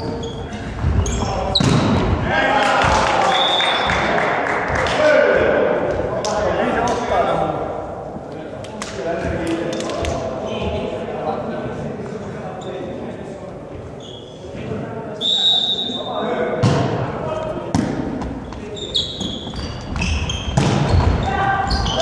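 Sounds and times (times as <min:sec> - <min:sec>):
players' voices: 0:00.0 - 0:22.0
volleyball serve slap: 0:01.5 - 0:02.1
referee whistle blast: 0:15.2 - 0:16.1.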